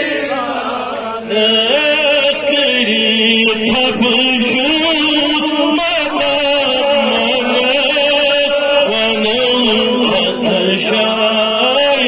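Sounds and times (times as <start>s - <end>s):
man chanting through a microphone: 0.8s - 12.0s.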